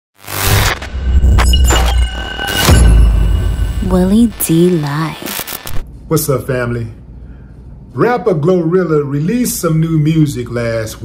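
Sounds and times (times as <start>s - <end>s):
burst of noise: 0.2s - 5.8s.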